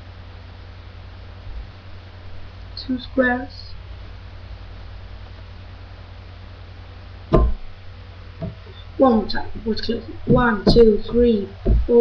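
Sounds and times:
steady low hum: 0.0 - 12.0
hands knocking on wooden table: 7.3 - 7.7, 8.4 - 8.7, 10.2 - 11.0, 11.6 - 12.0.

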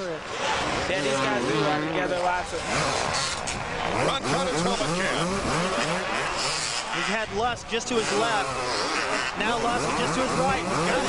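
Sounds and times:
motorcycle engines revving: 0.0 - 11.0.

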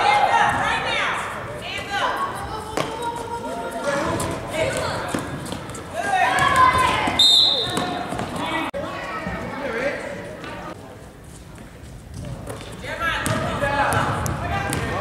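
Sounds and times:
voices of players and spectators: 0.0 - 15.0
basketball bouncing on gym floor: 4.6 - 8.5, 12.1 - 15.0
referee's whistle: 7.2 - 8.0.

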